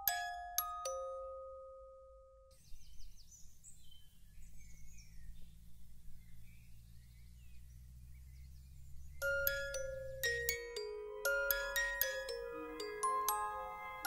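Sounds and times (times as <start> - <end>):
glockenspiel note ringing: 0.0 - 2.5, 9.2 - 14.0
faint low drone: 4.2 - 14.0
soft high chirping: 6.2 - 14.0.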